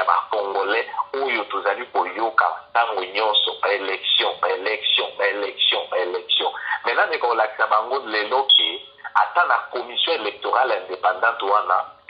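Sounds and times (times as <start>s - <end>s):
person talking: 0.0s - 12.0s.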